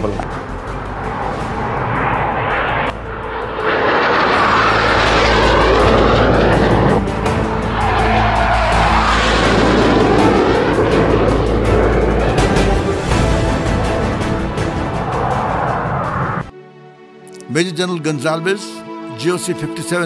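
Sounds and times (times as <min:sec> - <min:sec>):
jet aircraft flying past: 0:00.0 - 0:16.5
music: 0:00.0 - 0:20.0.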